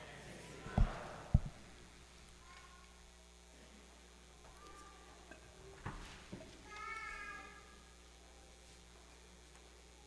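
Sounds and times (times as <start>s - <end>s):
knocks on a lectern: 0.7s - 1.6s.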